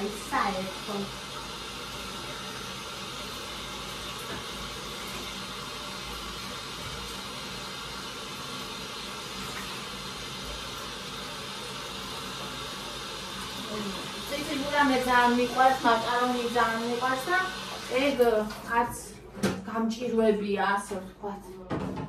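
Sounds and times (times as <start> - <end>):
tap water running into sink: 0.0 - 19.6.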